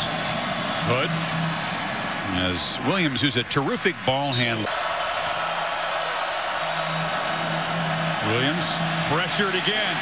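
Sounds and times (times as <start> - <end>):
stadium crowd hum: 0.0 - 10.0.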